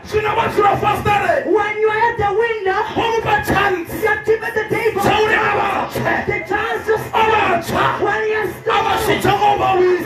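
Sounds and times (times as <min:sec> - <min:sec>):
man preaching into a microphone: 0:00.0 - 0:10.0.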